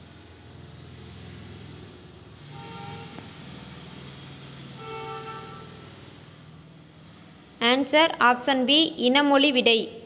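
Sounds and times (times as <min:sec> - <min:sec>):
vehicle horn honk: 0:02.4 - 0:03.3, 0:04.7 - 0:06.0.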